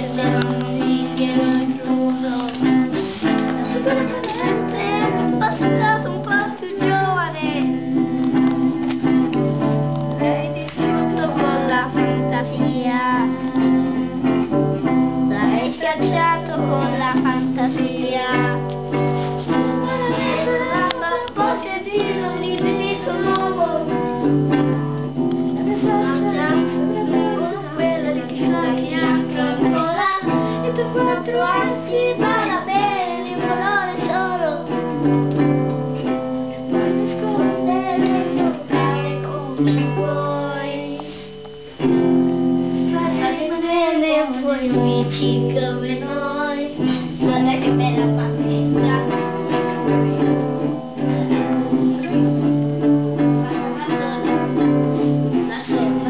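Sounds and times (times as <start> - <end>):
child singing: 0.0 - 42.0, 42.8 - 56.0
acoustic guitar chords: 0.0 - 56.0.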